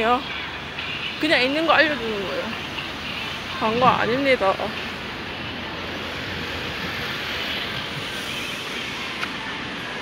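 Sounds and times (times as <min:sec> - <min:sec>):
road traffic rushing: 0:00.0 - 0:10.0.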